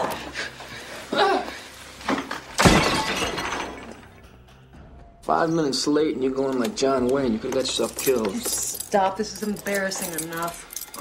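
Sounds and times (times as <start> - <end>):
music: 0.0 - 11.0
shattering crash: 2.1 - 4.2.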